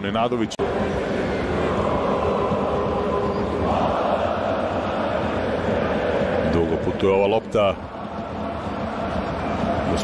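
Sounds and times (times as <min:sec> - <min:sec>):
stadium crowd rumble: 0:00.6 - 0:10.0.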